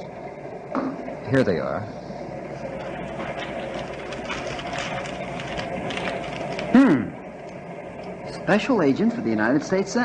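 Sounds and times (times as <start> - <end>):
faint crackles: 2.0 - 8.2.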